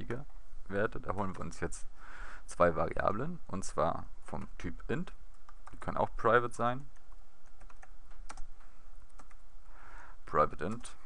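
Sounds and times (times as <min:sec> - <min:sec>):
low steady hum: 0:00.0 - 0:11.0
typing on computer keyboard: 0:06.9 - 0:08.5, 0:09.1 - 0:09.4.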